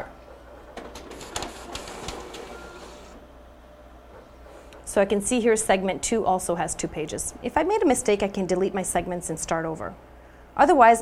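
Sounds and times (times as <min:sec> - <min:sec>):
printer mechanical whir: 0:00.3 - 0:04.8.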